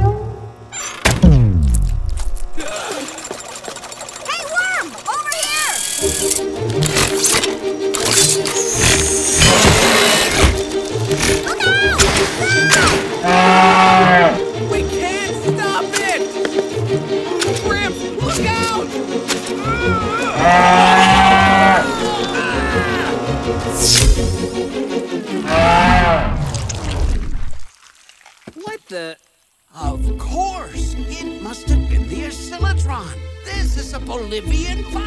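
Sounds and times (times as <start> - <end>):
wordless vocal cries: 11.5 - 14.4, 19.6 - 23.6, 25.4 - 26.3.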